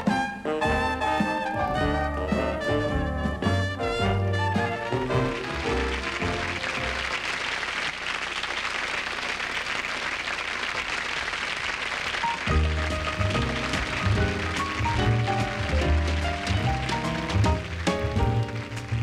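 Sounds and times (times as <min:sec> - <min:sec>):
jazz bass: 0:00.0 - 0:07.4, 0:12.2 - 0:19.0
jazz piano: 0:00.0 - 0:07.6, 0:12.2 - 0:19.0
swing brass band: 0:00.0 - 0:09.6, 0:11.9 - 0:19.0
audience applauding: 0:03.9 - 0:19.0.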